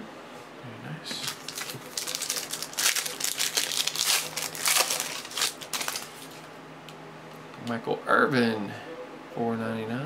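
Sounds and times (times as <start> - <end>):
foil wrapper crinkling and tearing: 1.2 - 6.4.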